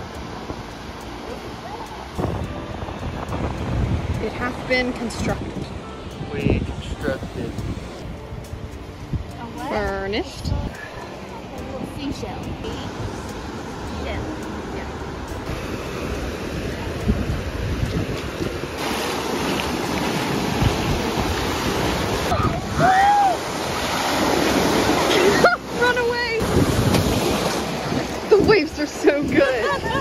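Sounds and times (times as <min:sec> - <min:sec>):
ocean surf washing: 0:00.0 - 0:30.0
wind on microphone: 0:01.7 - 0:30.0.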